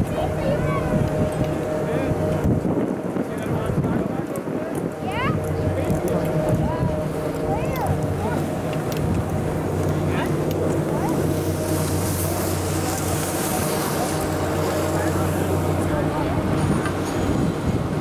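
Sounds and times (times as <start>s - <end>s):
chairlift machinery humming: 0.0s - 18.0s.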